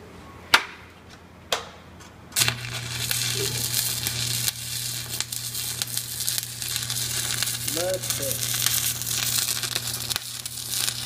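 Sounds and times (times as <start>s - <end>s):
welding arc crackling hiss: 2.4s - 11.0s.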